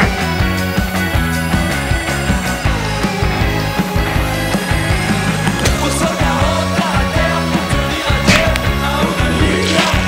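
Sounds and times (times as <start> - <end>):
rock music with electric guitar: 0.0 - 10.0.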